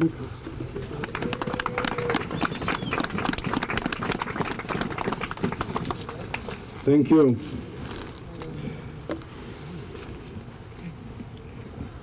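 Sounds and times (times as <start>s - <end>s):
crowd applauding: 0.8s - 6.5s.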